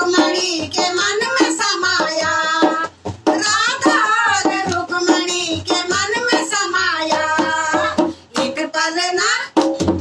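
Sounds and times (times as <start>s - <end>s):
women singing together: 0.0s - 9.8s.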